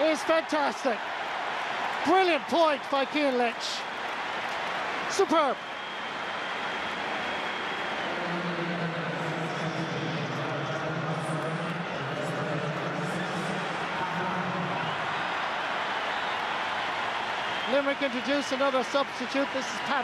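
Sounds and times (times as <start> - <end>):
stadium crowd cheering: 0.0 - 20.0.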